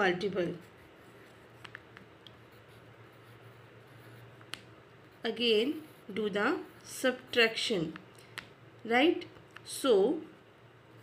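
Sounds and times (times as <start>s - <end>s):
pencil scratching on paper: 0.0s - 8.0s
low steady hum: 0.0s - 11.0s.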